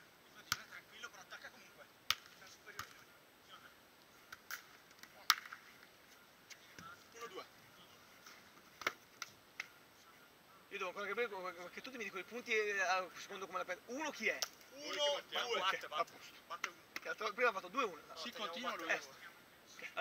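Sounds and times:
volleyball being slapped: 2.1 - 3.0, 4.3 - 5.6.

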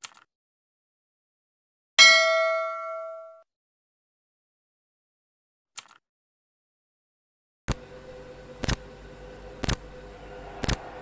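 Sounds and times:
notification bell ding: 2.0 - 3.4.

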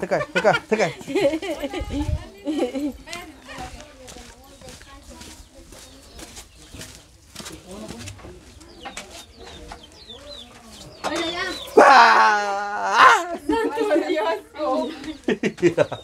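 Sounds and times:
chickens clucking: 0.0 - 11.8, 13.2 - 16.0
people chattering: 0.0 - 16.0.

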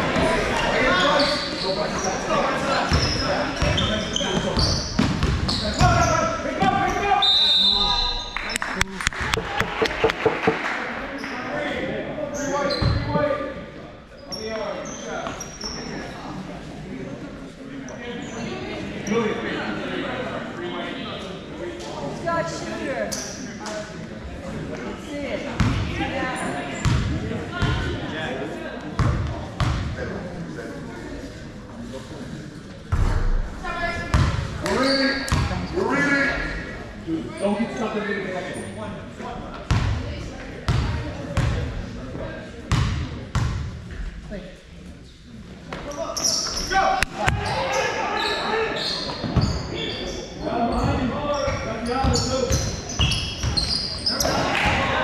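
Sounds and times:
voices of players and spectators: 0.0 - 55.0.

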